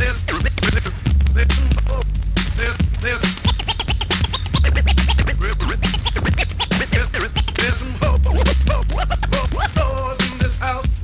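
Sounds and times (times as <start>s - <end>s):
looping hip-hop beat: 0.0s - 11.0s
vinyl record scratching: 0.0s - 11.0s
deep bass note: 4.6s - 9.6s.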